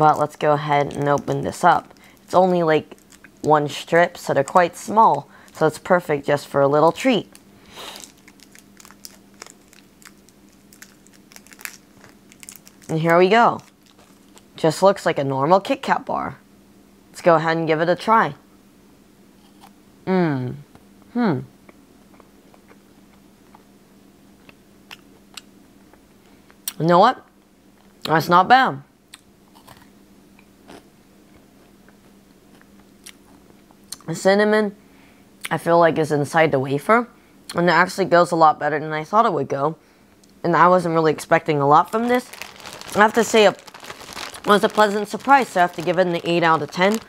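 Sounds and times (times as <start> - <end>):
candy wrapper crinkling: 0.0 - 14.6, 41.7 - 47.0
steady low hum: 0.0 - 26.7, 38.3 - 47.0
chewing wafer crunches: 0.1 - 3.5, 6.9 - 14.5, 29.2 - 29.9, 30.6 - 34.0, 41.9 - 47.0.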